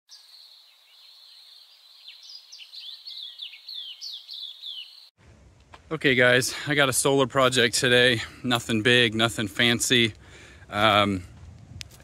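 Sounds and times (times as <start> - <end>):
birds chirping: 0.1 - 5.2.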